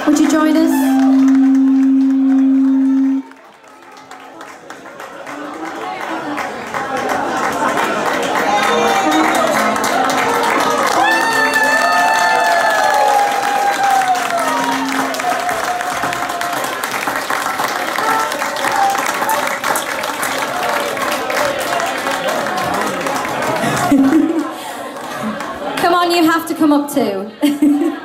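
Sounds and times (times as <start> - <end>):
audience applause: 0.0 - 26.2
crowd chatter: 0.0 - 28.0
held high note: 0.5 - 3.4, 8.6 - 11.9, 13.7 - 16.4.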